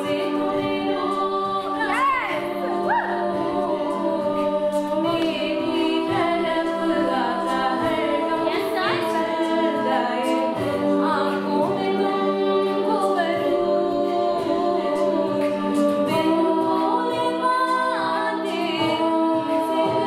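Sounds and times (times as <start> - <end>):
female backing voices holding chords: 0.0 - 20.0
female lead voice singing: 0.0 - 20.0.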